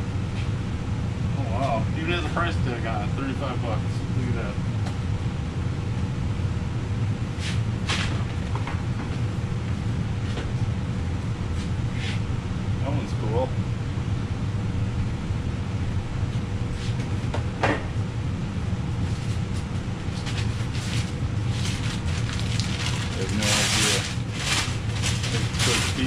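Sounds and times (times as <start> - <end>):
steady low hum: 0.0 - 26.0
packing paper crinkling: 20.2 - 26.0.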